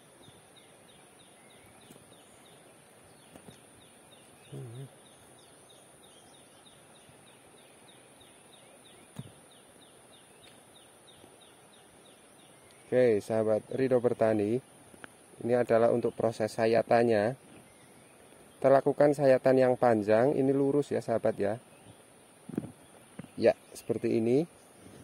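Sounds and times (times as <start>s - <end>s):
low human grunt: 4.5s - 4.9s.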